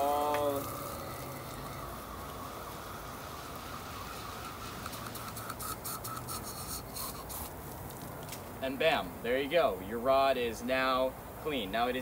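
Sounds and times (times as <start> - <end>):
hose nozzle spraying water: 0.0 - 7.6.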